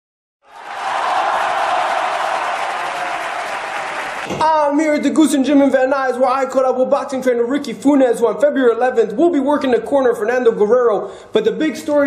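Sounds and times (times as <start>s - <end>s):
crowd applause: 0.4s - 4.4s.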